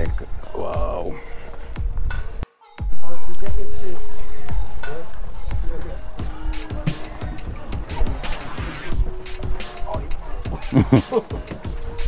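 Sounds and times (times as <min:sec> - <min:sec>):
music: 0:00.0 - 0:12.0
voices: 0:00.0 - 0:12.0.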